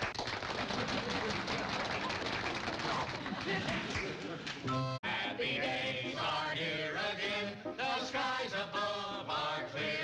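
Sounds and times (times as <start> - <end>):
applause: 0.0 - 4.6.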